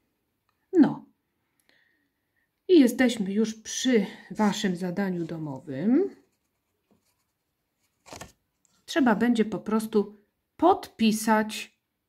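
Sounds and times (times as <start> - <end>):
pencil rustling on paper: 4.4 - 8.9.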